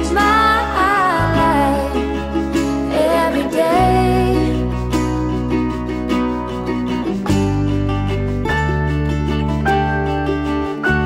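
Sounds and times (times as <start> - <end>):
held bass notes: 0.0 - 11.0
plucked strings: 0.0 - 11.0.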